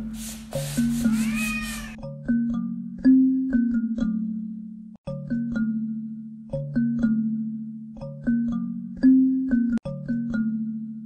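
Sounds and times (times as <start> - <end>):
cat meowing: 1.0 - 2.0.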